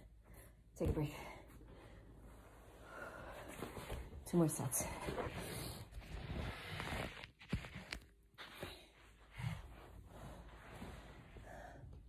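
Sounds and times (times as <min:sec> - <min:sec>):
rustling on exercise mat: 0:00.3 - 0:12.0.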